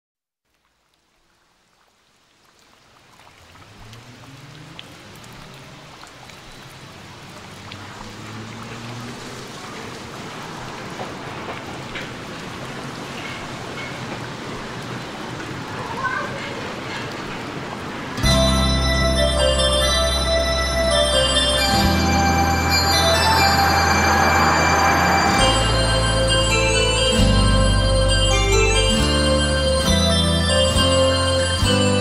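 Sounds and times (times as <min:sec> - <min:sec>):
rain hiss: 0:00.4 - 0:32.0
low sustained tones: 0:18.2 - 0:32.0.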